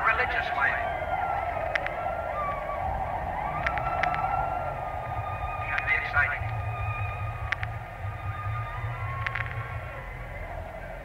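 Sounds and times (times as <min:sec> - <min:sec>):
wavering high tones: 0:00.0 - 0:11.0
soft clicks: 0:01.4 - 0:02.1, 0:03.6 - 0:04.4, 0:05.6 - 0:06.6, 0:07.4 - 0:07.9, 0:09.2 - 0:09.7.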